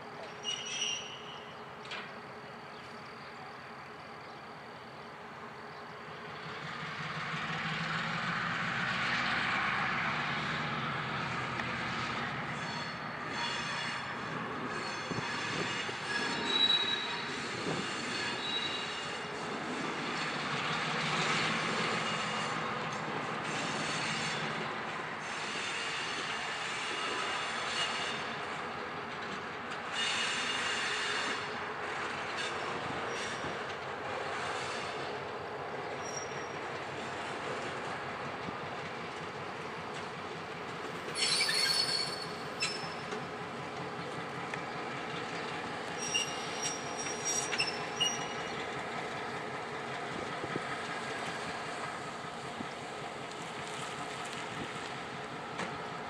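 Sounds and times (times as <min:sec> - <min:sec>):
locomotive wheels squealing: 0:00.2 - 0:03.7, 0:12.0 - 0:19.5, 0:20.1 - 0:28.7, 0:29.9 - 0:35.2, 0:35.8 - 0:36.9, 0:41.0 - 0:44.1, 0:44.7 - 0:49.1
diesel locomotive engine running: 0:01.1 - 0:56.0.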